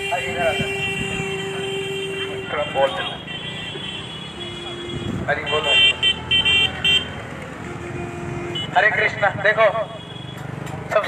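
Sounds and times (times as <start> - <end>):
man talking: 0.0 - 0.7
vehicle engines running: 0.0 - 11.0.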